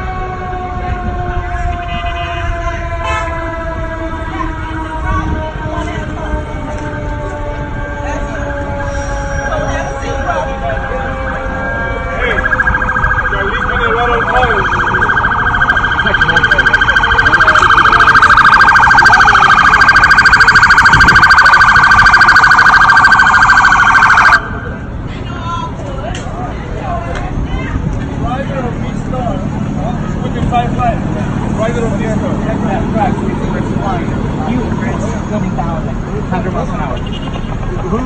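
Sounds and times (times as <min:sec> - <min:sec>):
fast-pulsing emergency siren: 0:00.0 - 0:25.1.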